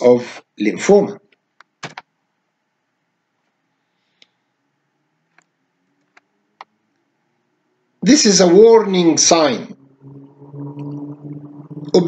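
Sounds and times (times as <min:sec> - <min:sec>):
person speaking: 0:08.0 - 0:12.0
low hum: 0:08.4 - 0:12.0.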